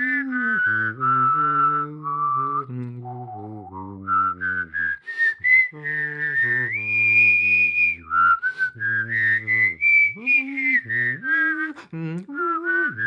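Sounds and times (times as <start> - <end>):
low voice singing: 0.0 - 13.0
whistled melody: 0.0 - 13.0.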